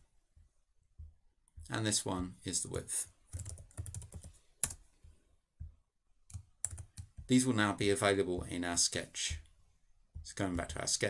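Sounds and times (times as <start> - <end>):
keyboard typing: 3.3 - 4.8, 6.2 - 7.3.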